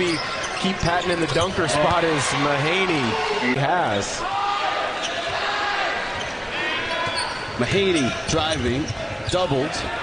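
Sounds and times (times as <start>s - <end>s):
sneaker squeak: 0.0s - 2.0s, 6.2s - 9.4s
crowd noise: 0.0s - 10.0s.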